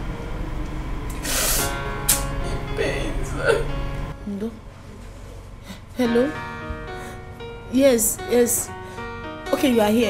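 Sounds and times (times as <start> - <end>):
woman hissing breath in pain: 1.2 - 2.7
film score music: 1.6 - 9.6.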